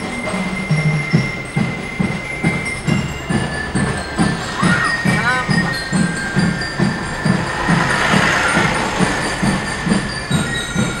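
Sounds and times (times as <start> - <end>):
low rumble of vehicles: 0.0 - 11.0
marching bass drum beating: 0.1 - 11.0.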